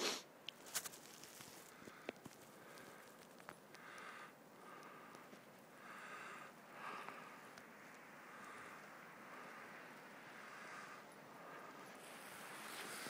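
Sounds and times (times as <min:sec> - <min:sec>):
soft hissing: 0:00.0 - 0:13.0
sled crunching over snow: 0:00.6 - 0:03.6, 0:11.7 - 0:13.0.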